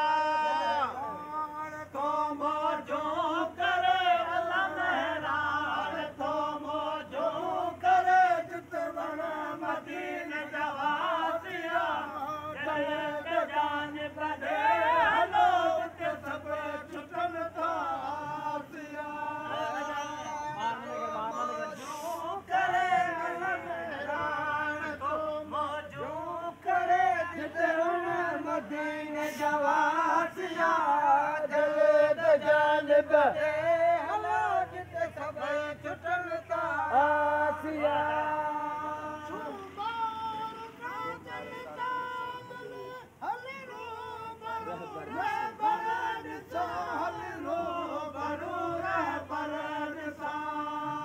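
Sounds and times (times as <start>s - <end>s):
man singing unaccompanied: 0.0s - 51.0s.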